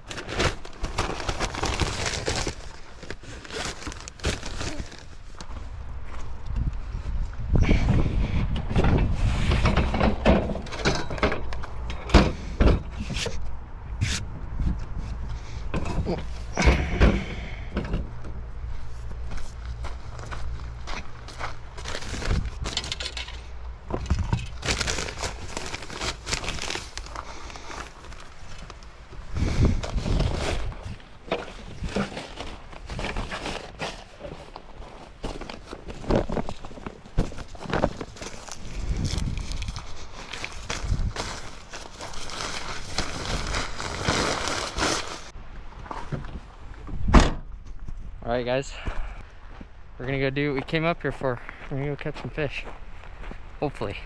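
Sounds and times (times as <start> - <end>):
footsteps: 18.2 - 24.3, 48.8 - 53.9.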